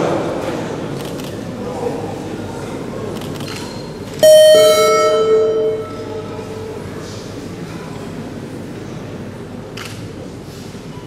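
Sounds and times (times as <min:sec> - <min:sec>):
hall background noise: 0:00.7 - 0:10.9
two-note electronic chime: 0:04.2 - 0:06.9.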